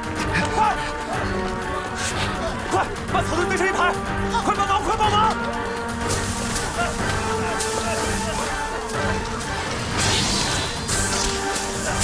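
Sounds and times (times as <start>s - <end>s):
sharp music hits: 7.6s - 12.0s.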